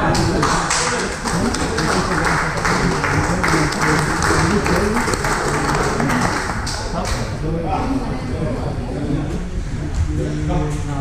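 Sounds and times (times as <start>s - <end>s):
people clapping and cheering: 0.0s - 7.4s.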